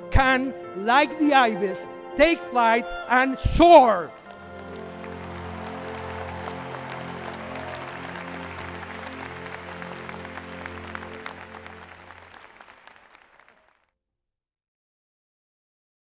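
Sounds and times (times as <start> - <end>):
music of long held chords: 0.0 - 13.2
audience applauding: 4.2 - 13.8.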